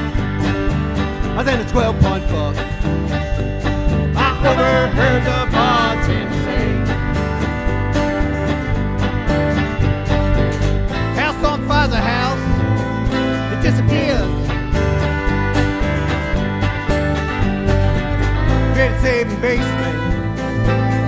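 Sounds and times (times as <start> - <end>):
acoustic guitar strumming: 0.0 - 21.0
live country band playing: 0.0 - 21.0
wavering melody line: 4.2 - 21.0.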